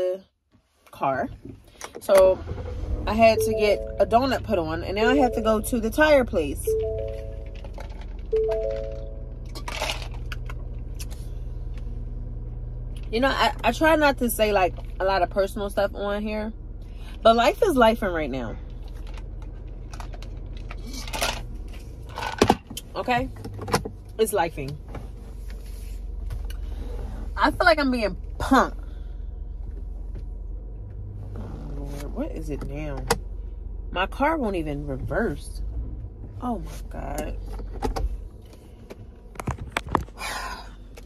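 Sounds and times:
car engine idling: 1.3s - 41.0s
held musical tones: 2.4s - 9.5s.

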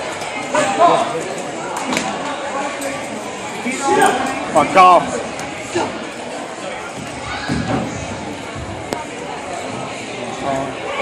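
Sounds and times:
indistinct chatter of spectators: 0.0s - 11.0s.

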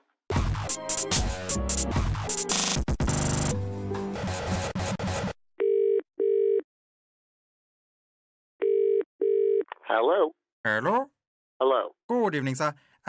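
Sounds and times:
music: 0.3s - 5.3s
telephone ringing tone: 5.6s - 6.6s, 8.6s - 9.6s.

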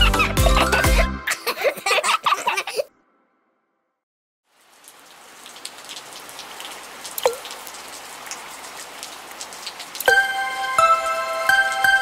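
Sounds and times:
rain patter: 4.4s - 12.0s
water drop plop: 6.6s - 7.6s.

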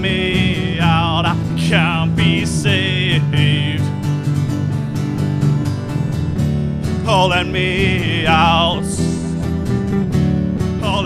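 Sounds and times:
person singing: 0.0s - 4.0s, 7.0s - 9.4s
rock band guitar and bass: 0.0s - 11.0s.

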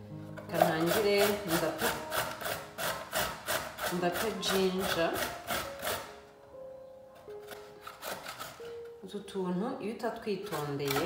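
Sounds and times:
soft background music: 0.0s - 11.0s
ginger rasping on metal grater: 0.5s - 6.2s, 7.4s - 8.7s, 10.3s - 11.0s.

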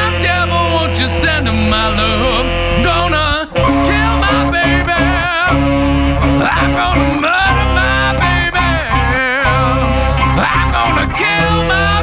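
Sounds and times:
blues rock band playing: 0.0s - 12.0s
tenor saxophone: 0.0s - 12.0s.

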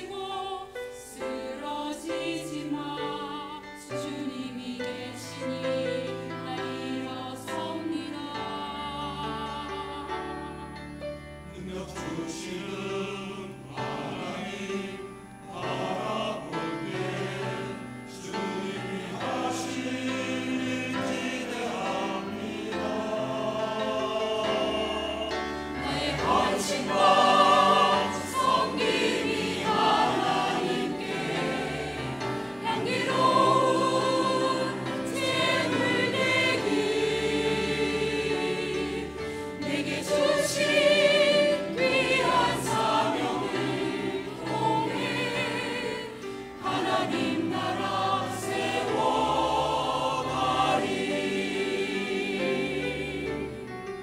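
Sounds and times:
mixed choir singing: 0.0s - 54.0s
piano accompaniment: 0.0s - 54.0s.

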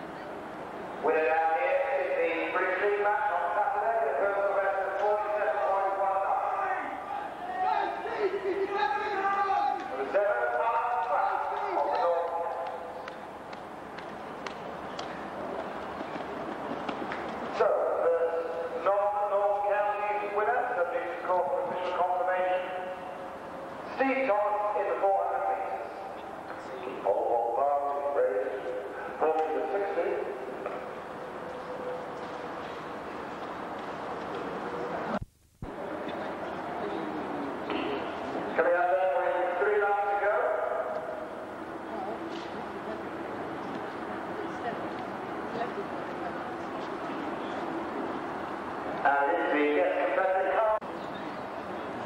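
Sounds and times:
outdoor background hiss: 0.0s - 52.0s
man talking: 1.0s - 12.9s, 17.6s - 23.0s, 23.9s - 26.0s, 26.6s - 30.8s, 38.5s - 41.1s, 49.0s - 50.8s
distant man calling out: 1.0s - 13.0s.

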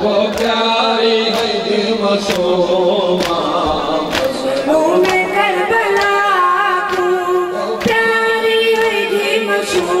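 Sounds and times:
boy chanting into a microphone: 0.0s - 10.0s.

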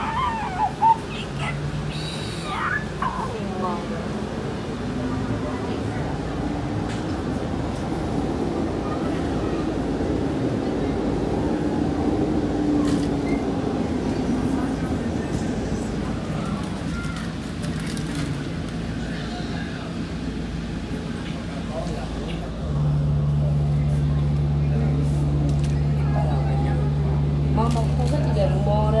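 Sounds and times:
bus engine and road rumble: 0.0s - 29.0s.

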